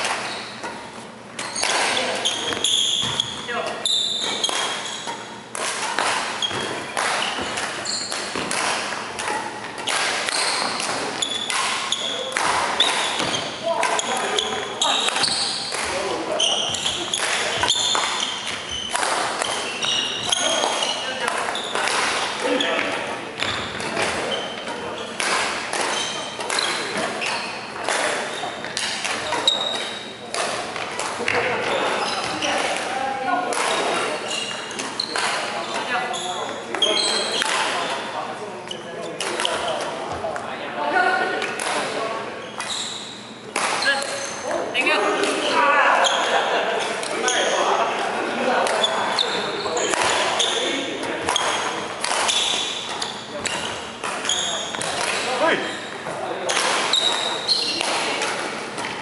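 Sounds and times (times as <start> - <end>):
shoes squeaking on wooden floor: 0.0 - 30.1, 30.7 - 32.7, 33.6 - 37.9, 42.3 - 44.6, 48.6 - 58.2
racket striking shuttlecock: 0.0 - 31.4, 33.5 - 36.0, 37.4 - 37.9, 41.4 - 41.9, 43.5 - 44.2, 49.8 - 55.5, 56.5 - 59.0
voices of players: 0.0 - 59.0.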